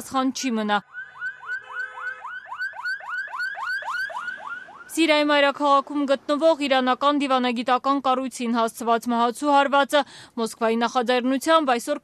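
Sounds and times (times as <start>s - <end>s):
siren on fast yelp: 0.8s - 5.0s.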